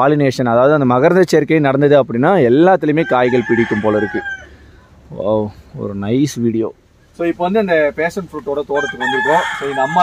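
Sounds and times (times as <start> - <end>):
man talking: 0.0 - 4.4, 5.0 - 10.0
rooster crowing: 3.0 - 4.7, 8.7 - 10.0.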